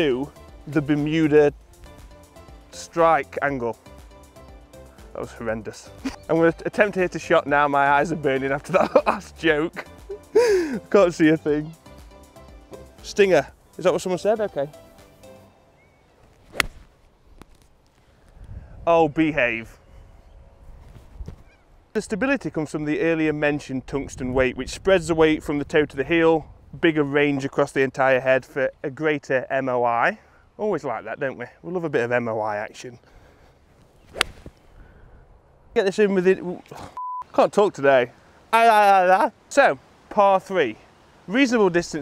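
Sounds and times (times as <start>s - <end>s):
golf club striking ball: 16.5s - 16.9s, 34.1s - 34.6s.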